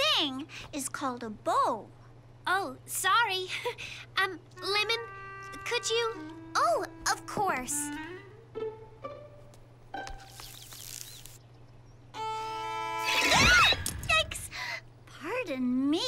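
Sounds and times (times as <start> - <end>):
violin scraping screech: 4.6 - 9.4.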